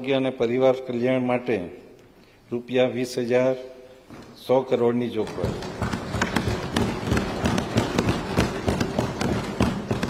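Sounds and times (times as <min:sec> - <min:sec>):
people thumping desks: 0:05.1 - 0:10.0.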